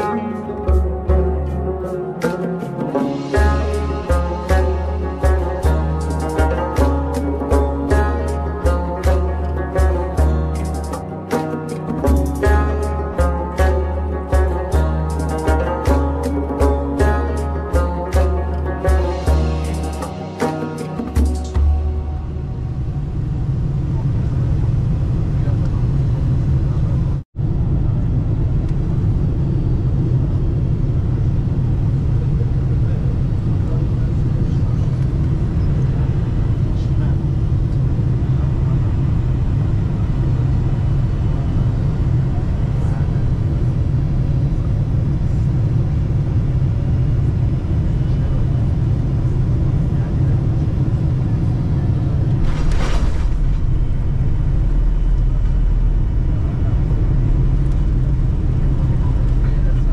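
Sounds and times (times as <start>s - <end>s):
airplane cabin rumble: 0.0s - 59.9s.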